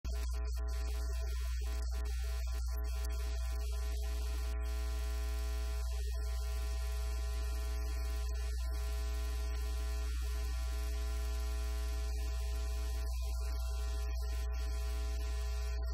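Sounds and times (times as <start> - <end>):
electrical mains hum: 0.0 - 15.9.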